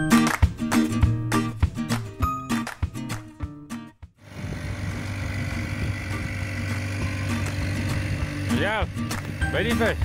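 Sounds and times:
outboard motor droning: 0:04.2 - 0:10.0.

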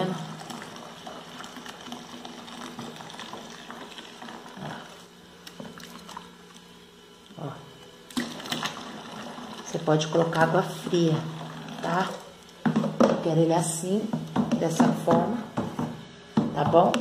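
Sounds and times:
thick liquid pouring into bucket: 0:00.0 - 0:06.6, 0:08.2 - 0:09.9, 0:10.9 - 0:12.9
steady low hum: 0:00.0 - 0:17.0.

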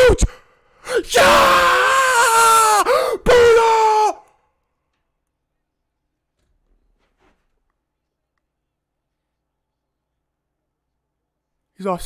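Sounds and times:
man yelling: 0:00.9 - 0:04.3.

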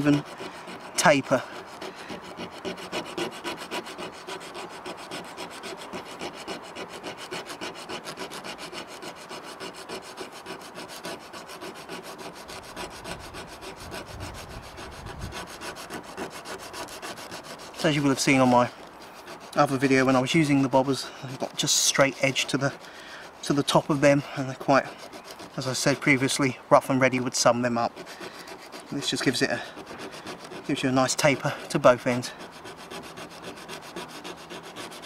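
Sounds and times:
wood rubbing on sandpaper: 0:00.0 - 0:35.0.

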